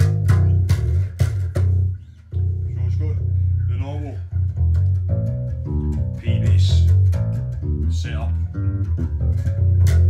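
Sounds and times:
electric bass guitar plucked notes: 0.0s - 10.0s.

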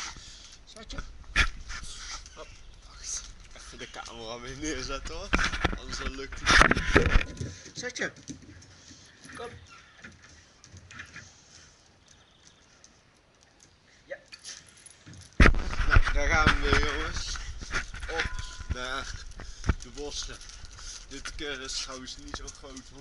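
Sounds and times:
chain collar clinking: 11.9s - 15.4s, 16.9s - 23.0s.

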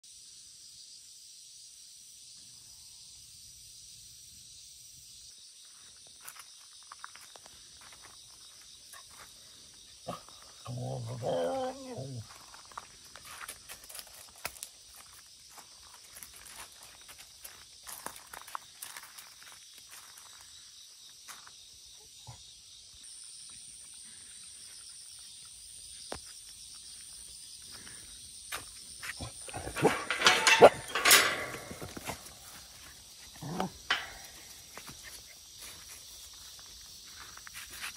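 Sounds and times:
insects chorus: 0.0s - 37.9s
faint clicks and scuffs: 34.3s - 37.9s.

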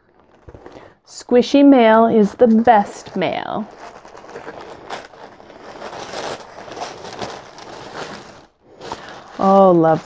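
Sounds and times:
tissue paper rustling: 0.0s - 1.0s, 1.8s - 10.0s.

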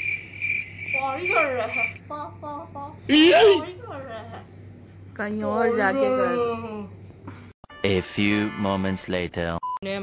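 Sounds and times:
cricket chirping: 0.0s - 2.0s.

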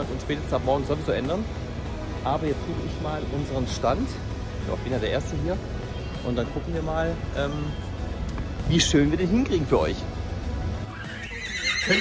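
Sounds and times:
music: 0.0s - 12.0s
horse whinnying: 10.9s - 12.0s.

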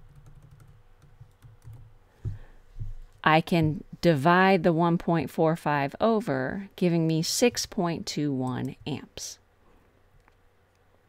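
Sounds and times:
keyboard typing: 0.0s - 3.8s.

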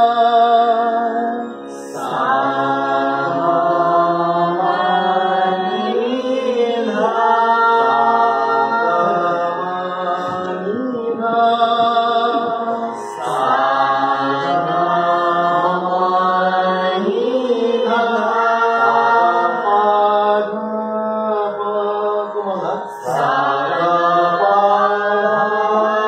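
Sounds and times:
group singing a chant-like melody: 0.0s - 26.0s.

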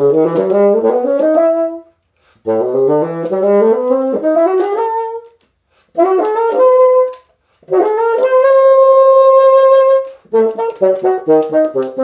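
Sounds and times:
bassoon runs and held notes: 0.0s - 12.0s.

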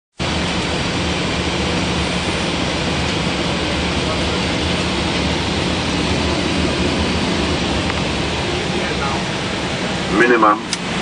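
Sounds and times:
airflow rushing over aircraft: 0.1s - 11.0s
low engine hum: 0.2s - 11.0s.

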